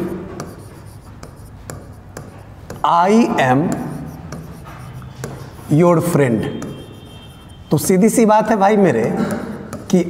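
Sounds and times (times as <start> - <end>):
marker writing on a board: 0.0 - 10.0.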